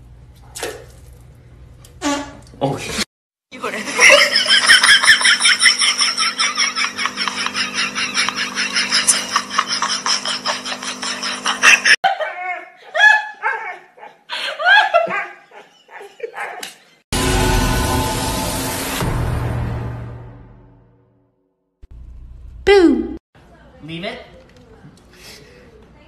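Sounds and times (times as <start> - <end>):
person laughing hard: 3.8 - 16.6.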